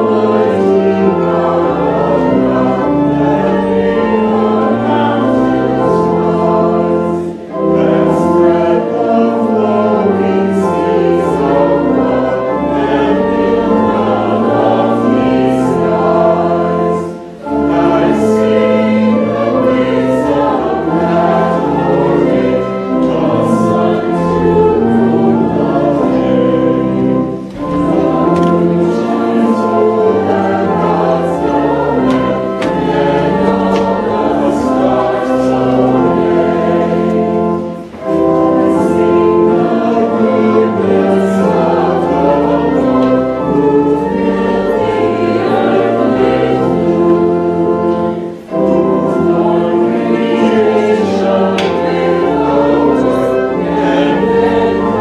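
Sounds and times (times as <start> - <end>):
congregation singing a hymn: 0.0 - 55.0
organ accompaniment: 0.0 - 55.0.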